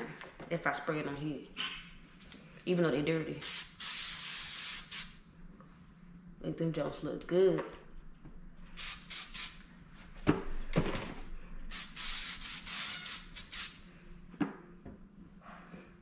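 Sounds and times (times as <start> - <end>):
aerosol can spraying: 3.4 - 5.2, 8.8 - 9.6, 11.7 - 13.8.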